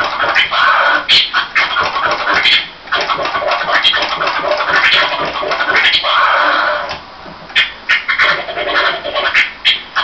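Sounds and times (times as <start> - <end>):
vinyl record scratching: 0.0 - 10.0.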